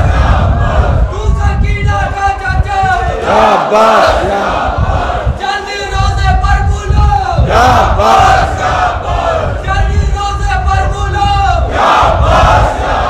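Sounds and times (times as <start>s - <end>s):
crowd of men chanting: 0.0s - 1.1s, 3.0s - 5.4s, 7.4s - 9.6s, 11.6s - 13.0s.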